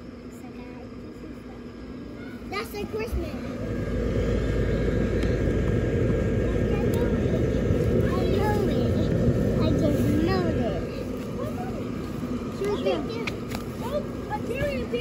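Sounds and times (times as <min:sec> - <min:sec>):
electric blower fan whirring: 0:00.0 - 0:15.0.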